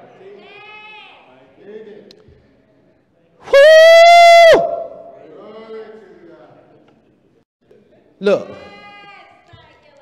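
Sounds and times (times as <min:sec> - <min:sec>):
high-pitched shouted woo: 0:03.5 - 0:05.2.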